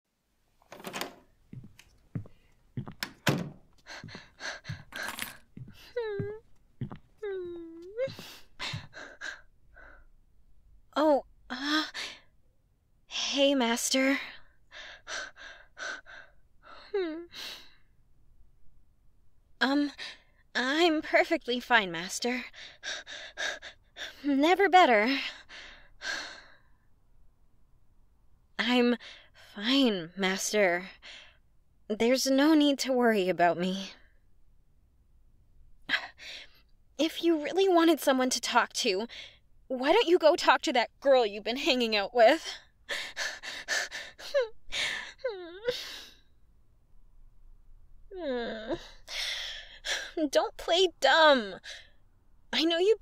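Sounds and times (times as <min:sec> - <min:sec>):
sudden knocks and thunks: 0:00.7 - 0:04.9
woman breathing breathily: 0:03.8 - 0:06.3, 0:08.0 - 0:10.1, 0:42.5 - 0:46.3
woman speaking: 0:20.6 - 0:22.5, 0:24.2 - 0:25.2, 0:31.9 - 0:33.9, 0:37.0 - 0:39.1, 0:39.7 - 0:42.6, 0:50.2 - 0:51.6, 0:52.5 - 0:53.0.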